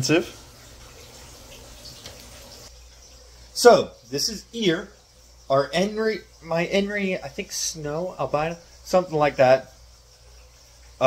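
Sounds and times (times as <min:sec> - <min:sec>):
faint room noise hiss: 0:00.0 - 0:11.0.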